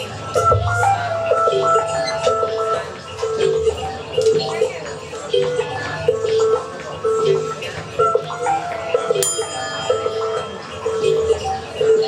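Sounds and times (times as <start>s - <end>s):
metal cup struck ringing: 9.2s - 11.2s.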